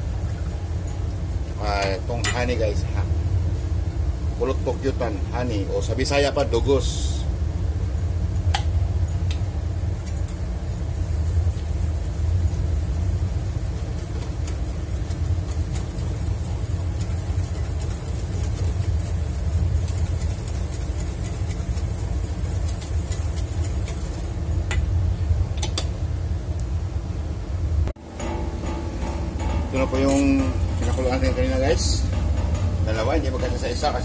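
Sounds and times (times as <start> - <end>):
low machine drone: 24.3 - 34.0.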